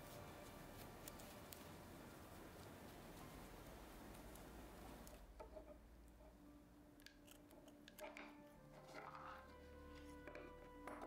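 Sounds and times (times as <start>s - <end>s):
scissors snipping twine: 0.8s - 1.7s, 7.0s - 9.3s.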